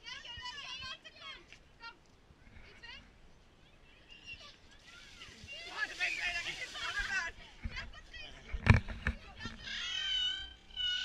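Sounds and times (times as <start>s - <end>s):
children squealing calls: 9.6s - 11.0s.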